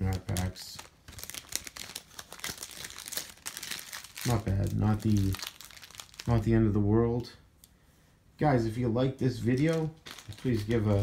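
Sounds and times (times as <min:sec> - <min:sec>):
plastic wrapping crinkling: 0:00.0 - 0:06.6, 0:09.3 - 0:11.0.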